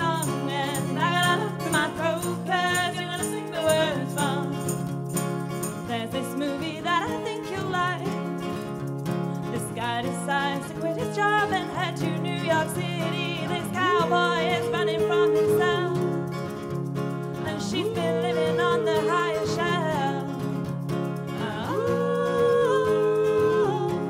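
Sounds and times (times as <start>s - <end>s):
woman singing: 0.0s - 4.9s, 5.6s - 8.6s, 9.5s - 16.5s, 17.3s - 24.0s
acoustic guitar: 0.0s - 24.0s
percussion: 0.0s - 24.0s.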